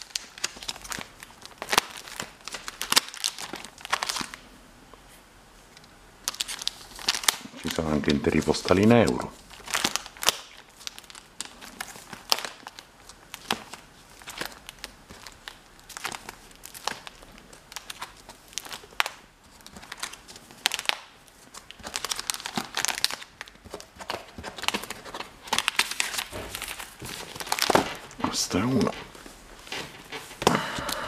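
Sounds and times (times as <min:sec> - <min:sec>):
plastic sleeve pages crinkling: 0:00.0 - 0:04.4, 0:05.7 - 0:31.0.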